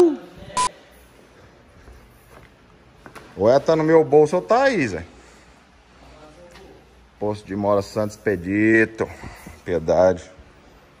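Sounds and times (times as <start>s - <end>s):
person exclaiming: 0.0s - 0.3s.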